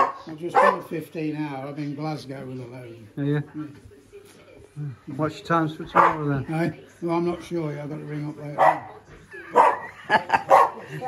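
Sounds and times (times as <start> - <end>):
small dog barking: 0.0 - 0.9, 6.0 - 6.2, 8.6 - 8.9, 9.5 - 9.9, 10.5 - 10.8.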